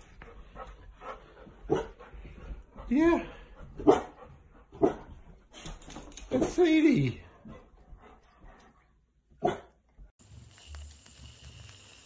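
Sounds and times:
dog barking: 1.7s - 2.0s, 3.8s - 4.2s, 4.8s - 5.1s, 9.4s - 9.8s.

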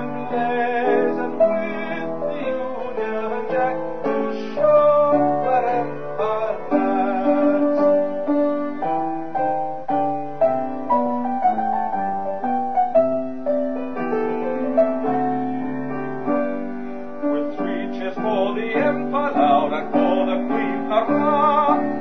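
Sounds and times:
piano melody over chords: 0.0s - 22.0s.

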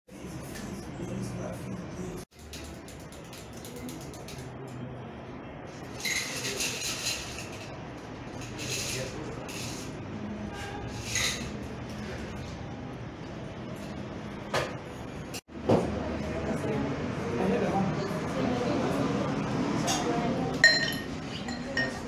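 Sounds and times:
murmur of voices: 15.8s - 22.0s
glass bottles clinking: 20.6s - 22.0s.

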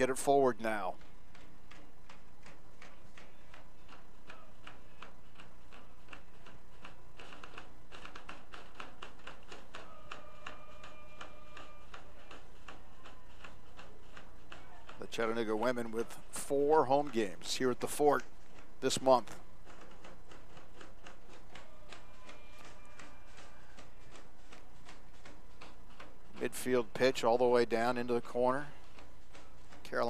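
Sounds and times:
faint irregular clicks: 0.0s - 30.0s
steady low hum: 0.0s - 30.0s.

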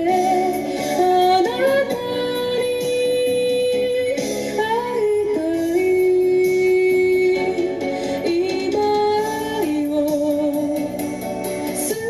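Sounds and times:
instrumental accompaniment: 0.0s - 12.0s
woman singing into a microphone: 0.0s - 12.0s.

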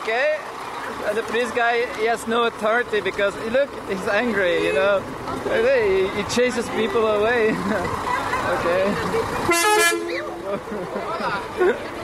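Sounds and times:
voices: 0.0s - 12.0s
laughter: 7.5s - 9.0s, 10.3s - 12.0s
horn toot: 9.5s - 10.3s.

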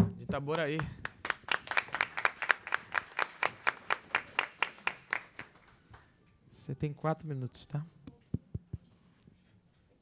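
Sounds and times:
applause: 0.5s - 6.1s.

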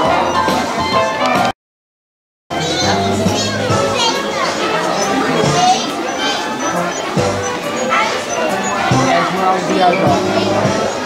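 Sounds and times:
music playing: 0.0s - 1.5s, 2.5s - 11.0s
children chattering: 2.5s - 11.0s.

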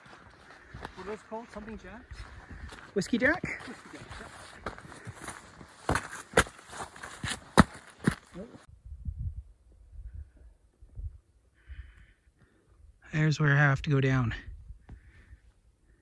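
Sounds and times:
footsteps on rocky trail: 0.0s - 8.7s.

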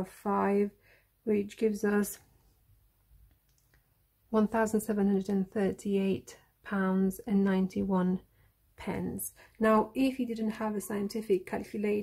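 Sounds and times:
faint clicks: 3.2s - 3.9s.

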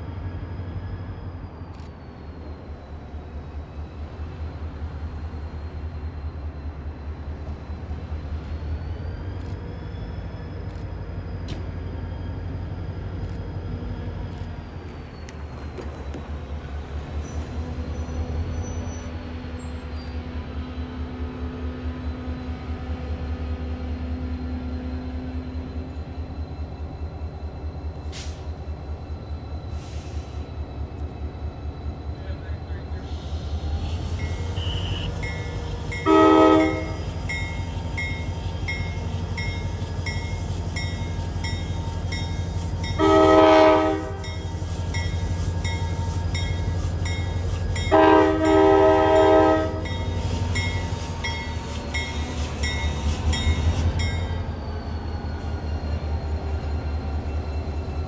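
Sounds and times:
diesel locomotive engine rumble: 0.0s - 58.0s
train horn blasts: 33.9s - 37.2s, 42.9s - 44.4s, 47.7s - 50.3s.

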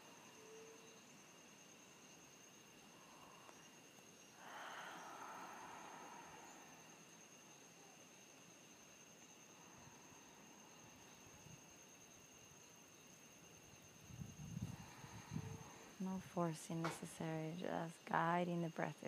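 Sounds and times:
soft breath exhale: 2.9s - 7.1s, 14.6s - 16.0s.

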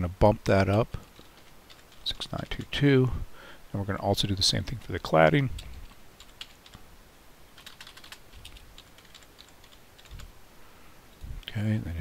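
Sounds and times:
computer keyboard keystrokes: 0.5s - 2.7s, 7.6s - 10.3s.

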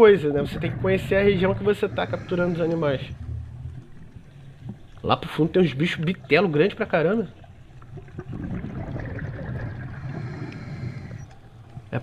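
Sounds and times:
underwater rush and gurgle: 0.0s - 12.0s
exhaled breath bubbling: 8.0s - 12.0s.

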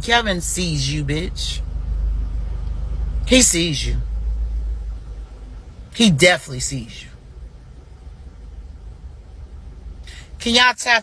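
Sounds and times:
low rumble: 0.0s - 10.5s.

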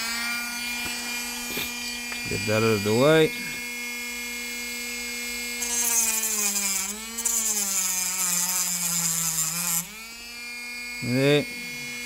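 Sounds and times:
disc cutting wood hiss: 0.0s - 3.6s
rotary tool motor whine: 0.0s - 12.0s.

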